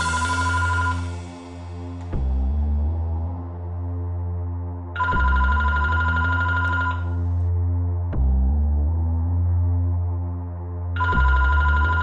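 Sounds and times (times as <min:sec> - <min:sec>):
electronic music with low bass: 0:00.0 - 0:12.0
telephone warbling ring: 0:00.3 - 0:01.1, 0:05.0 - 0:07.2.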